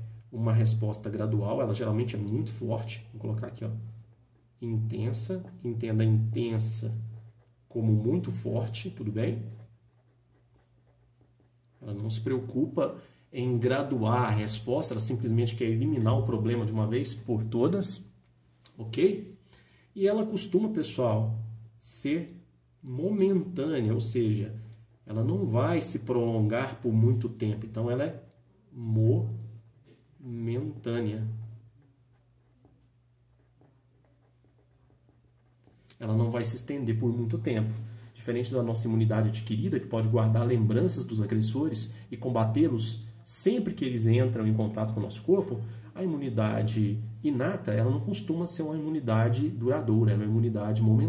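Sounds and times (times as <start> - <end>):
man speaking: 0.0 - 4.0, 4.6 - 9.7, 11.8 - 18.1, 18.7 - 19.4, 20.0 - 29.6, 30.2 - 31.6, 35.9 - 51.0
low steady hum: 0.0 - 51.0
pen scratching on paper: 3.4 - 13.0, 30.8 - 38.6.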